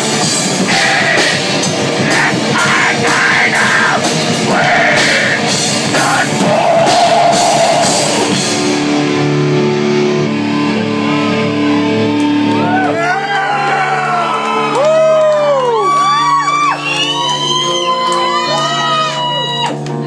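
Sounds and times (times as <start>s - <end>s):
drums: 0.0s - 20.0s
crowd shouts and whoops: 6.0s - 8.4s, 10.4s - 20.0s.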